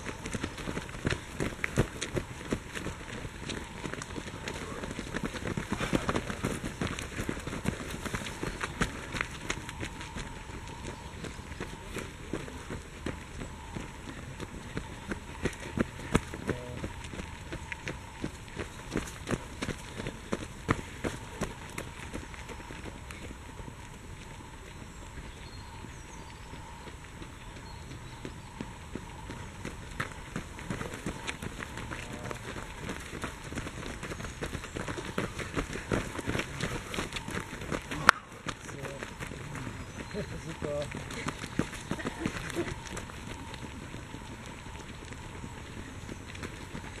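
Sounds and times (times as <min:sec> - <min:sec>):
running footsteps on dry leaves: 0:00.0 - 0:47.0.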